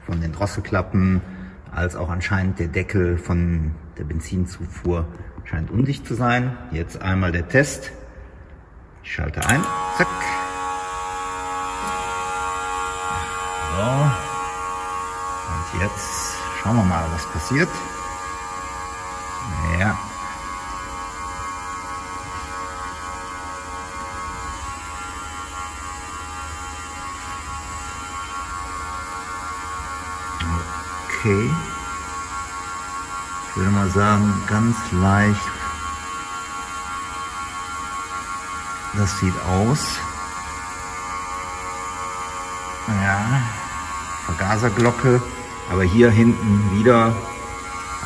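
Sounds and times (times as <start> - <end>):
smoke machine electric hum: 0.0 - 48.0.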